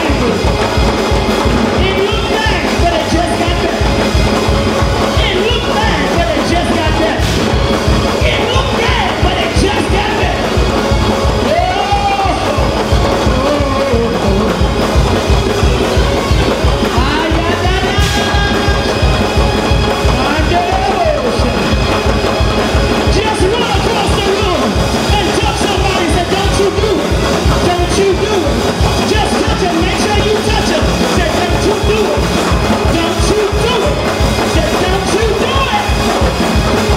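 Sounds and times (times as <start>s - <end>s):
fast drum beat: 0.0s - 36.9s.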